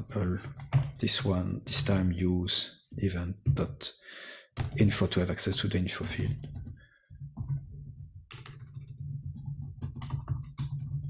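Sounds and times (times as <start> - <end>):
typing on computer keyboard: 0.0 - 1.1, 4.6 - 4.9, 6.0 - 11.0.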